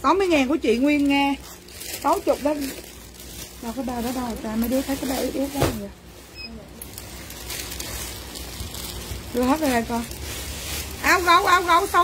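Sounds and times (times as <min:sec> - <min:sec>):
plastic bags rustling and crinkling: 0:00.0 - 0:12.0.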